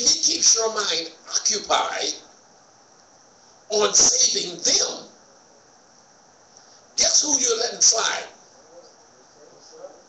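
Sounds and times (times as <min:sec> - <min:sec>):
man's voice: 0:00.0 - 0:02.2, 0:03.7 - 0:05.1, 0:07.0 - 0:08.4.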